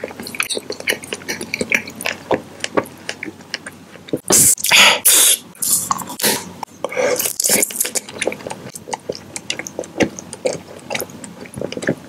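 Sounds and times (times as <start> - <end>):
lip and tongue clicks: 7.2 - 12.0.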